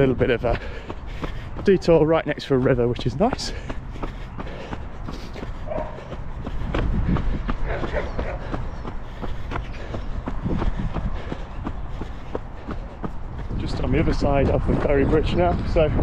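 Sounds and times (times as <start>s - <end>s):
running footsteps on mud: 0.0s - 16.0s
wind rumble: 0.0s - 16.0s.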